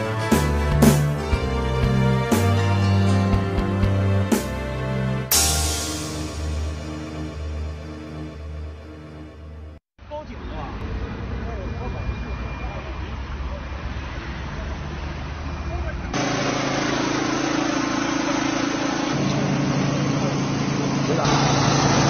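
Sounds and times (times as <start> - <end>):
outdoor street rumble: 6.1 - 22.0
engine humming: 10.4 - 22.0
people talking: 11.4 - 14.8, 21.0 - 21.7.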